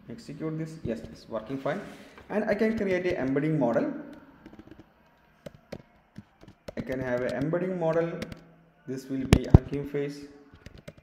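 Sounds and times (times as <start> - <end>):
computer keyboard keystrokes: 10.6 - 11.0.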